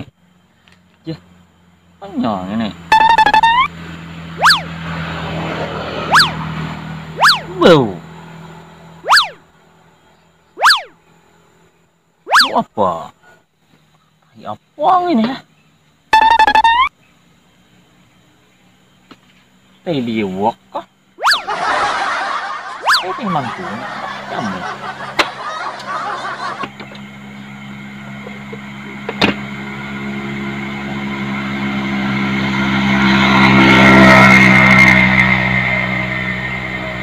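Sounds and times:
vehicle engine passing by: 0:03.7 - 0:11.3, 0:21.2 - 0:37.0.

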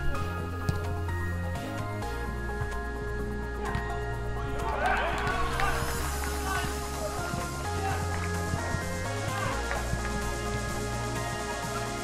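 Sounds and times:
music with deep bass line: 0:00.0 - 0:12.0
people shouting: 0:04.4 - 0:09.9.

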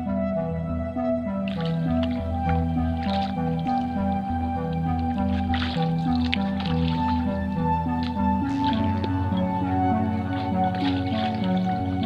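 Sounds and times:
slow melody of held notes: 0:00.0 - 0:12.0
paddle strokes splashing water: 0:01.5 - 0:12.0.

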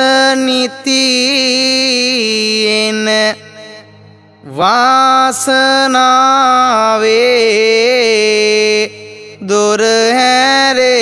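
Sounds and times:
man chanting melodic verses: 0:00.0 - 0:11.0.

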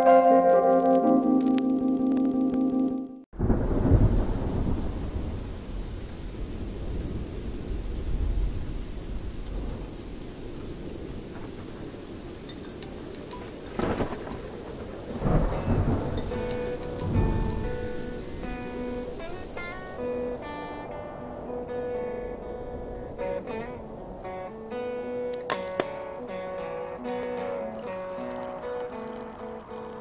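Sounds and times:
music notes: 0:00.0 - 0:03.3, 0:15.2 - 0:30.0
rolling thunder: 0:03.4 - 0:25.2
steady rain: 0:03.4 - 0:30.0.

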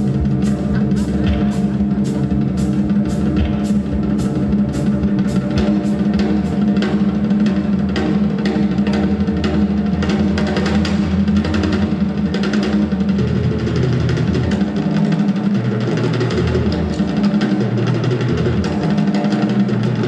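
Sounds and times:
band holding low note: 0:00.0 - 0:12.2
rock drum kit: 0:00.0 - 0:20.0.

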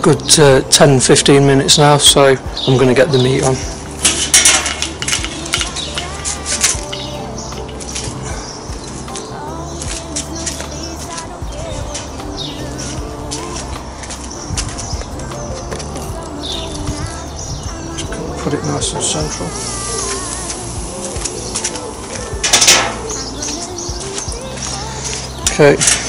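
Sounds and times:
background music: 0:00.0 - 0:26.0
metal lid clanking: 0:04.0 - 0:05.7, 0:22.4 - 0:23.1.

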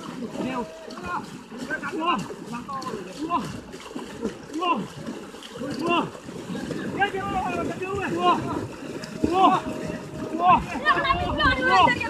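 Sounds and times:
people shouting: 0:00.0 - 0:12.0
splashing in shallow water: 0:00.0 - 0:12.0.

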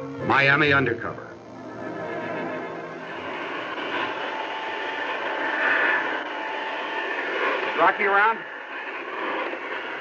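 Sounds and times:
floor cleaning machine running: 0:00.0 - 0:09.8
thin steady whine: 0:00.0 - 0:10.0.

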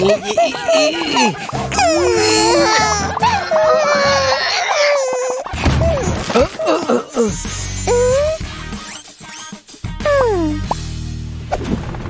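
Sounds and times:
cartoon baby crying: 0:00.0 - 0:08.4, 0:10.0 - 0:10.6
background music: 0:00.0 - 0:12.0.

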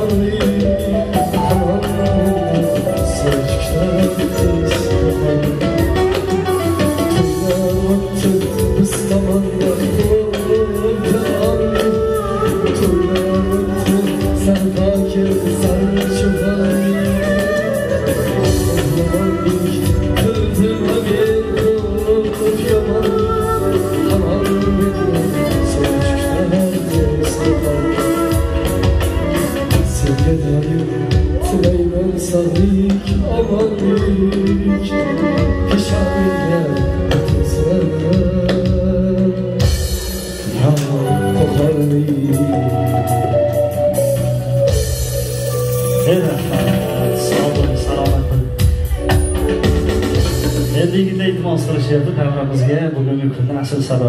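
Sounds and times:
hand drums beating: 0:00.0 - 0:41.0, 0:44.6 - 0:51.1
man singing into a microphone: 0:00.0 - 0:43.6, 0:45.9 - 0:49.1
bass line: 0:00.0 - 0:54.0
electronic keyboard: 0:40.6 - 0:53.3.

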